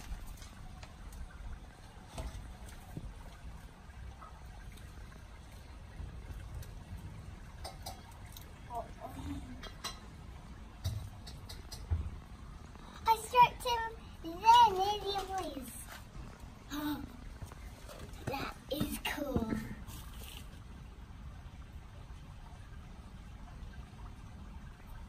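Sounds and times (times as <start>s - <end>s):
low background noise: 0.0s - 25.0s
girl's high voice: 13.1s - 16.0s, 16.7s - 17.2s, 18.2s - 19.8s.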